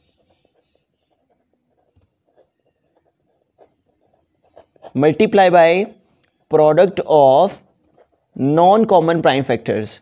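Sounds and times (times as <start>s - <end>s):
pen scratching on paper: 0.0s - 9.2s.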